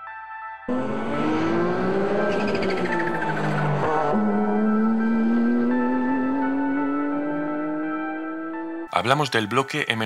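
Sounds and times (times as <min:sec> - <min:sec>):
background music: 0:00.0 - 0:10.0
race car engine: 0:00.7 - 0:08.9.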